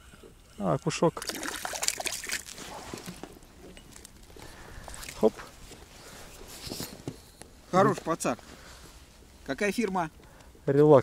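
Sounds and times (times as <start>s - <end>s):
fish splashing at surface: 1.2s - 3.2s
water running off net: 1.2s - 3.2s.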